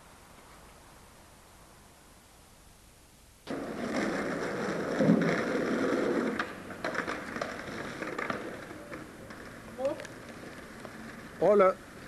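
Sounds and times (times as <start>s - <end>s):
skateboard wheels rolling on asphalt: 3.4s - 12.0s
skateboard clacks: 3.5s - 12.0s.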